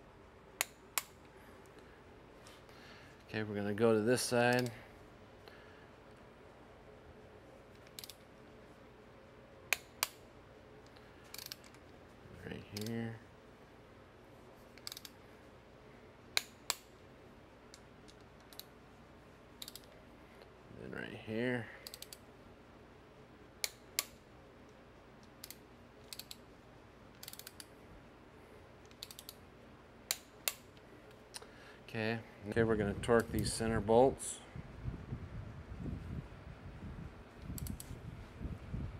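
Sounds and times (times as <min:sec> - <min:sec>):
torque wrench clicks: 0:04.5 - 0:04.8, 0:07.8 - 0:08.2, 0:11.3 - 0:11.8, 0:14.8 - 0:15.2, 0:19.6 - 0:19.9, 0:21.8 - 0:22.2, 0:25.2 - 0:26.4, 0:27.2 - 0:27.7, 0:28.9 - 0:29.4
wrench ratchet clicking: 0:07.8 - 0:08.2, 0:11.3 - 0:11.8, 0:14.8 - 0:15.2, 0:19.6 - 0:19.9, 0:21.8 - 0:22.2, 0:25.4 - 0:26.4, 0:27.2 - 0:27.7, 0:28.9 - 0:29.4
ratchet rattle: 0:11.2 - 0:11.8, 0:14.8 - 0:15.2, 0:27.2 - 0:27.7.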